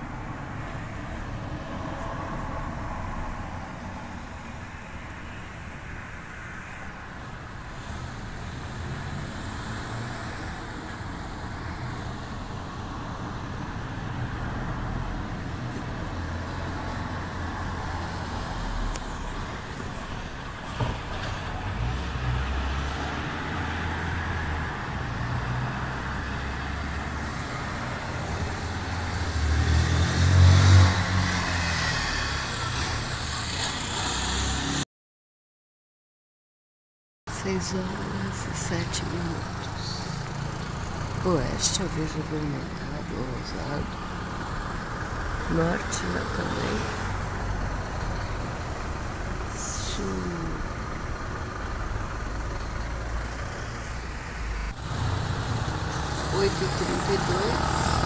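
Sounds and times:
road traffic hum: 0.0s - 34.9s, 37.3s - 58.0s
vehicle passing: 7.8s - 20.4s, 21.0s - 34.8s, 38.0s - 58.0s.

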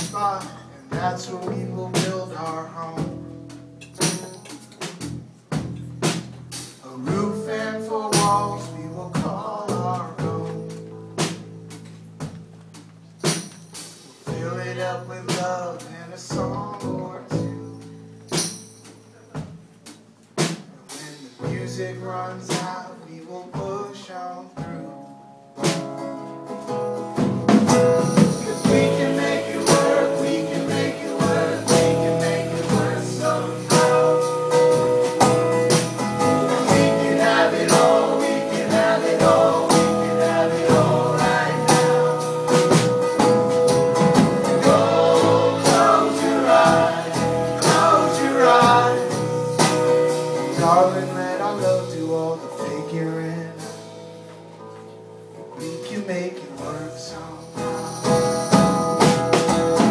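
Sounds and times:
upright bass: 0.0s - 23.0s, 25.6s - 53.8s
acoustic guitars: 0.0s - 59.9s
steady beat: 27.4s - 50.0s.

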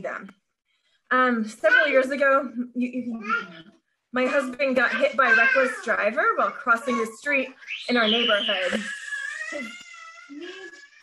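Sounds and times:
toddler whining: 4.3s - 7.4s, 8.2s - 11.0s.

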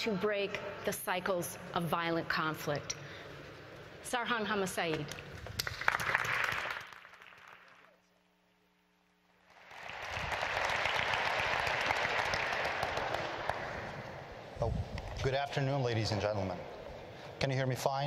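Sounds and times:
audience applauding: 5.6s - 8.0s, 9.4s - 14.4s.

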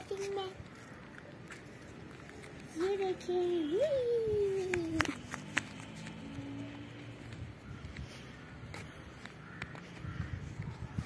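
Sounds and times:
faint caw-like bird calls: 0.6s - 1.4s, 7.5s - 11.0s.

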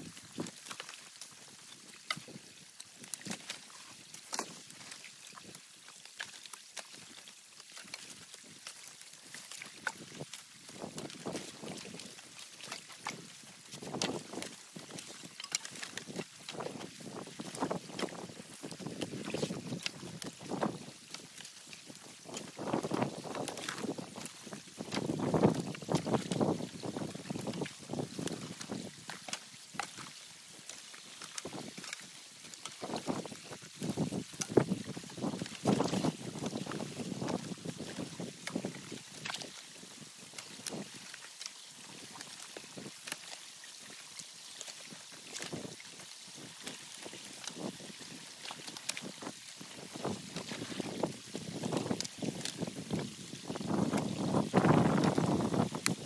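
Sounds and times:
water splashing and sloshing: 0.0s - 56.0s
water trickling: 0.0s - 56.0s
wood crackling and snapping: 13.8s - 20.8s, 21.4s - 33.2s
wind buffeting microphone: 52.8s - 56.0s.

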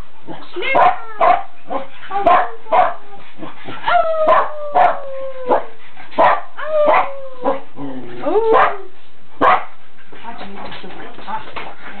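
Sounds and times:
dog barks: 0.8s - 3.0s, 6.2s - 7.1s, 8.5s - 8.8s, 9.4s - 9.7s
woman howling: 3.8s - 5.6s, 6.6s - 8.9s
dogs howling: 3.8s - 8.9s.

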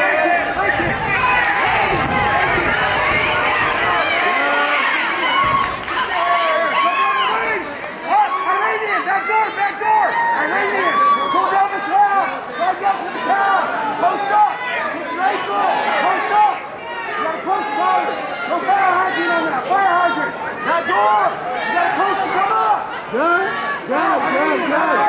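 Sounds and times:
crowd shouting: 0.0s - 25.0s.

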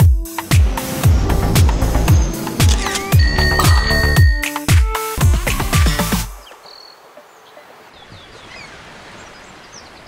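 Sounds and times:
intro music: 0.2s - 6.3s
small birds chirping: 6.1s - 10.0s.

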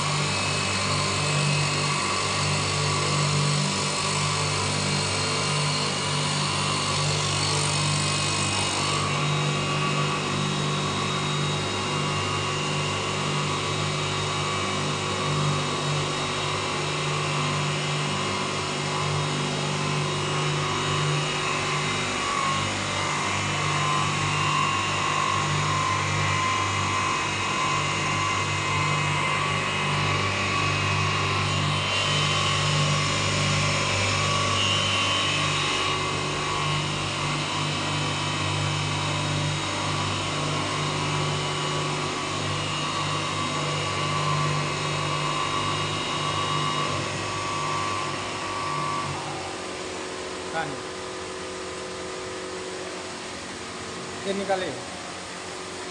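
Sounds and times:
electric motor hum: 0.0s - 55.9s
grinding wheel whine and hiss: 0.0s - 55.9s.

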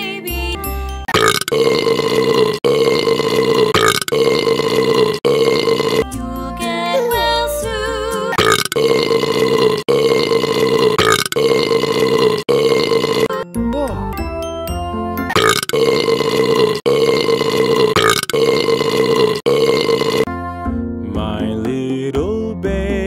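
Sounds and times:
long burps: 1.0s - 6.1s, 8.3s - 13.4s, 15.3s - 20.3s
children's song backing music: 6.1s - 8.4s, 20.3s - 23.0s.

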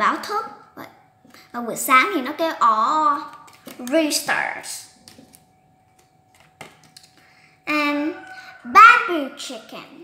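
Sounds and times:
cardboard flashcards tapping: 5.0s - 7.3s.

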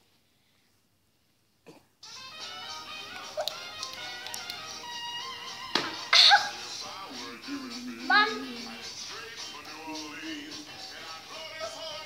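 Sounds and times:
music with held notes: 2.0s - 12.0s.

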